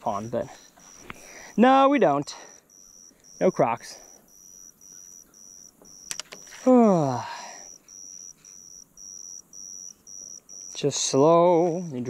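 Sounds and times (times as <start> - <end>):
insect chirping: 0.0 - 12.0
sharp clicks: 5.8 - 6.4
man sighing: 6.6 - 7.7.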